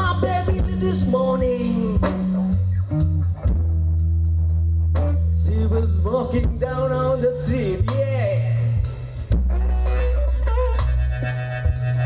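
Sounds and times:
bass guitar: 0:00.0 - 0:12.0
electric guitars: 0:00.0 - 0:12.0.

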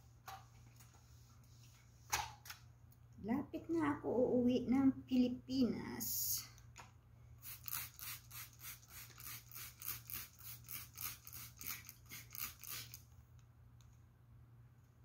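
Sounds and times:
spray bottle squirting: 0:07.4 - 0:13.0.

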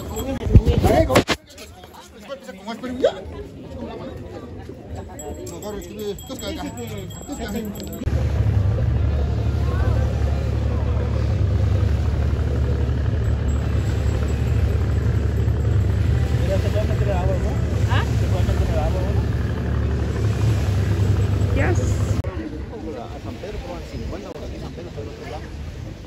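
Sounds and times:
boat engine running: 0:05.5 - 0:26.0.

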